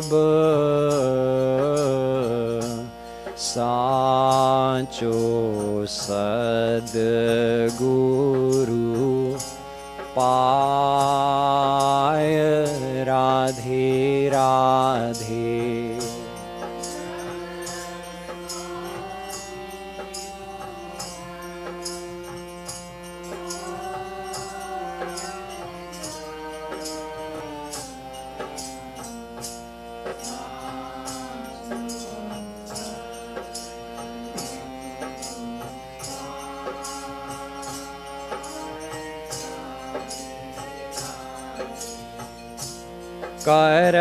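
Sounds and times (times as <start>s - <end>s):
harmonium playing held chords: 0.0s - 44.0s
jingling percussion: 0.0s - 44.0s.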